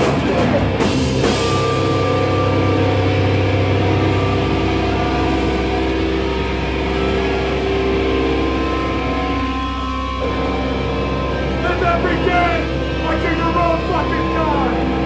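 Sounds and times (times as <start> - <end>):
electric guitars sustaining: 0.0 - 15.0
low amplifier hum: 0.0 - 15.0.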